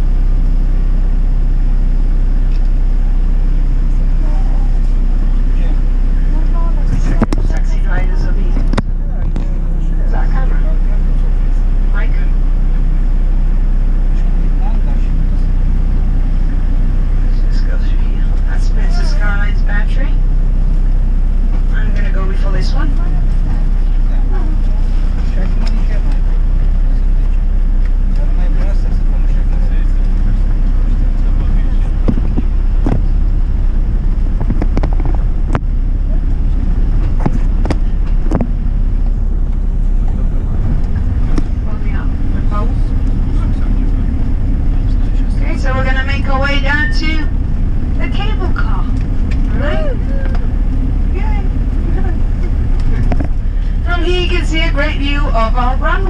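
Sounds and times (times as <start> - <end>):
vehicle engine and road noise: 0.0 - 56.0
voices talking: 2.4 - 56.0.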